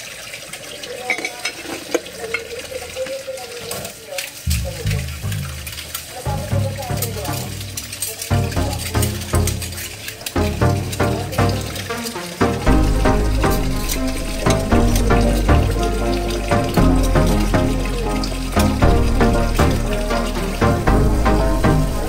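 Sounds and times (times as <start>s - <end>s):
water running at a sink: 0.0s - 22.0s
dishes clinking: 1.0s - 2.7s
background music: 4.5s - 22.0s.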